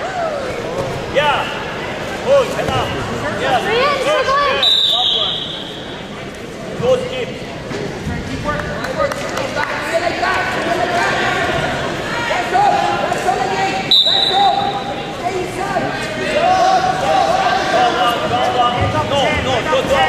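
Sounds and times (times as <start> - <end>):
people shouting in echoing gym: 3.3 - 6.1
high whistle blast: 4.6 - 5.8, 13.9 - 14.6.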